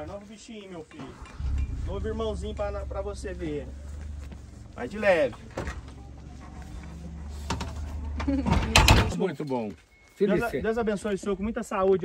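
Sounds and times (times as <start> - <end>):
steady low rumble: 1.0 - 6.0.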